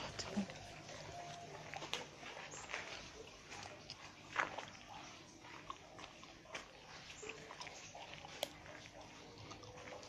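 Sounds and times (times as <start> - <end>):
faint chewing mouth clicks: 0.1 - 10.0.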